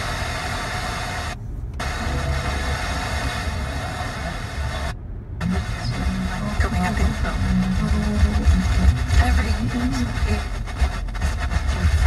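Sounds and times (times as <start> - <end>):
low car engine rumble: 0.0 - 12.0
radio static hiss: 0.0 - 12.0.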